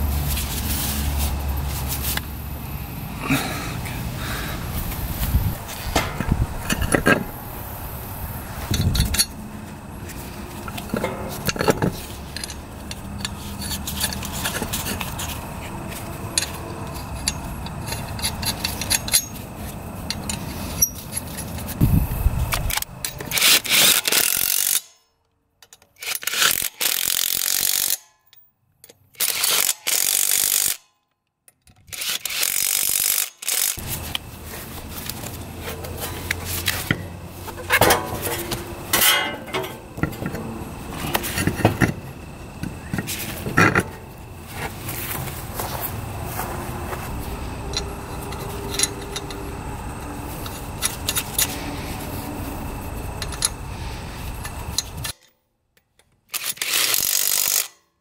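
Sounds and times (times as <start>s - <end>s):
impact wrench bursts: 26.0s - 28.1s, 29.2s - 30.8s, 31.9s - 34.2s.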